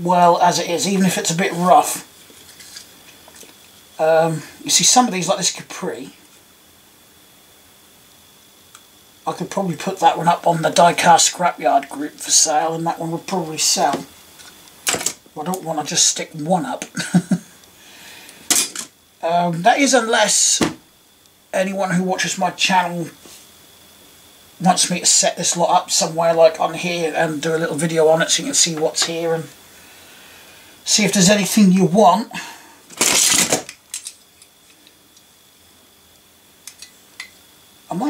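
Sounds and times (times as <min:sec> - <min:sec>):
person laughing: 0:16.8 - 0:17.6.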